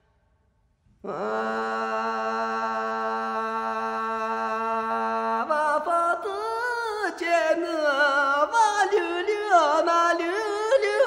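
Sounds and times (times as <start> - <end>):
man singing unaccompanied: 1.0 - 11.0.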